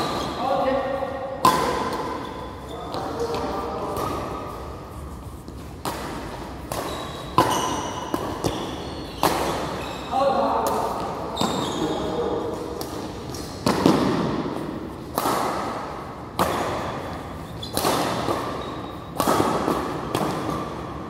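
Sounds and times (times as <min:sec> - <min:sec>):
badminton racket hitting shuttlecock: 0:01.4 - 0:02.3, 0:05.5 - 0:09.8, 0:12.7 - 0:21.0.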